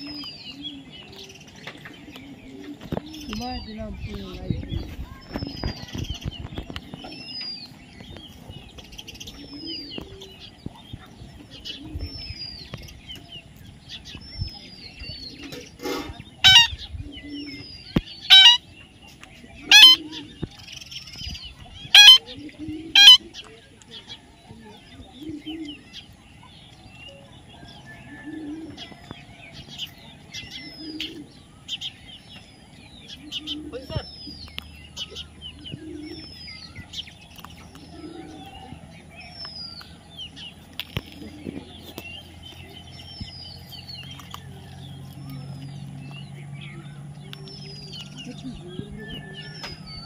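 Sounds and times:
birds chirping and whistling: 0.0s - 50.0s
parakeets squawking: 15.8s - 17.1s, 17.9s - 18.8s, 19.6s - 23.4s
faint bird whistles: 27.6s - 29.1s, 46.7s - 50.0s.

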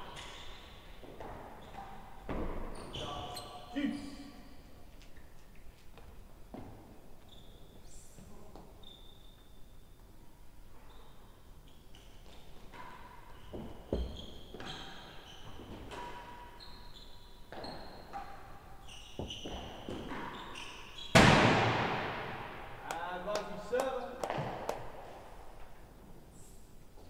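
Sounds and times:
shoes squeaking on court: 0.0s - 4.2s, 5.0s - 9.9s, 10.8s - 21.2s.

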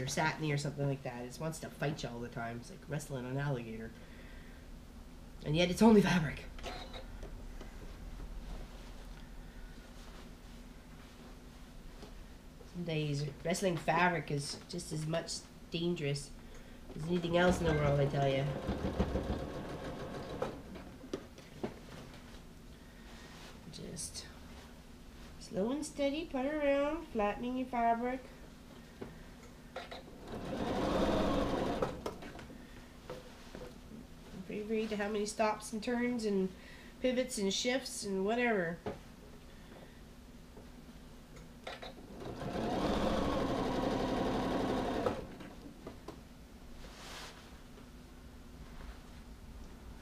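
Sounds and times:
sewing machine stitching: 17.4s - 20.9s, 29.9s - 32.4s, 41.8s - 45.6s
fabric shifting: 46.8s - 47.8s.

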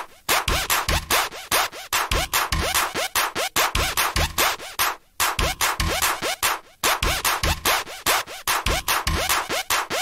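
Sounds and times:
electronic dance music: 0.0s - 10.0s
kick drum: 0.3s - 1.2s, 2.0s - 2.8s, 3.6s - 4.5s, 5.2s - 6.1s, 6.8s - 7.8s, 8.5s - 9.4s.

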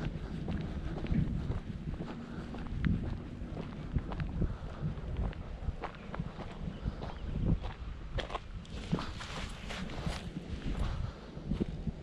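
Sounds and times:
footsteps on gravel: 0.0s - 11.8s.

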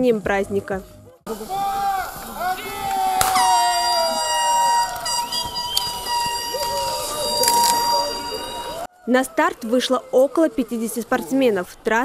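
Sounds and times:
air horn blast: 3.2s - 8.9s.

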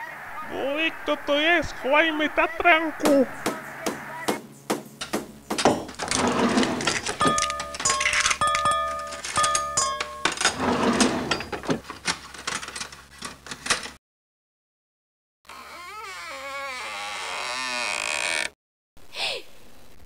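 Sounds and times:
clattering knocks and rattles: 5.0s - 14.0s.

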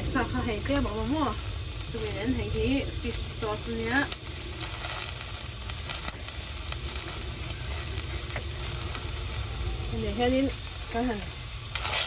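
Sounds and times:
liquid bubbling and sizzling in pot: 0.0s - 12.0s.

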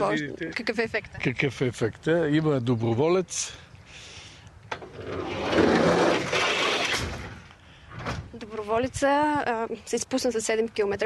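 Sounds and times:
sled rolling rumble: 4.9s - 7.4s.

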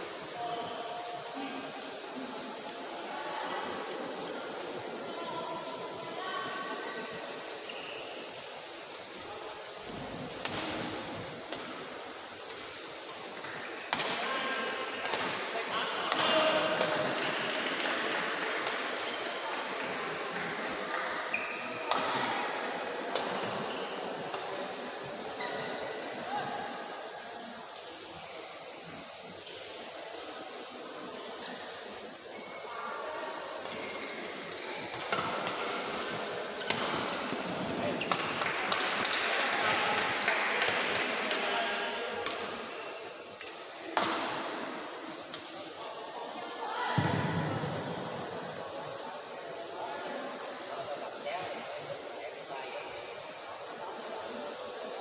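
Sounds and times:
sports hall background: 0.0s - 55.0s.

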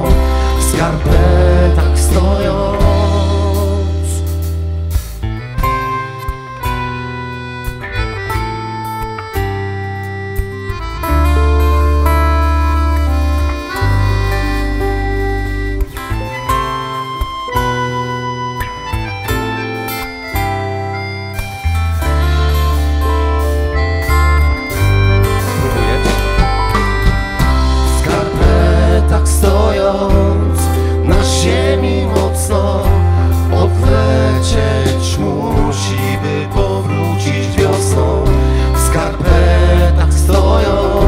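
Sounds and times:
accordion: 0.0s - 41.0s
acoustic guitar picking: 0.0s - 41.0s
bass line: 0.0s - 41.0s
folk band playing: 0.0s - 41.0s.

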